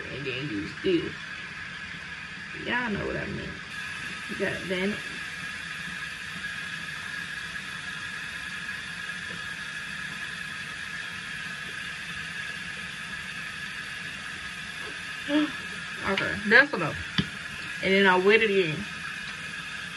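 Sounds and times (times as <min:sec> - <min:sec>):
water running from a tap: 0:00.0 - 0:19.9.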